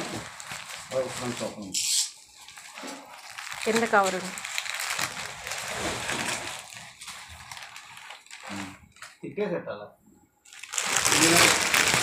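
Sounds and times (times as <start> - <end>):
packaging rustling and crinkling: 0.0 - 9.2, 10.5 - 12.0.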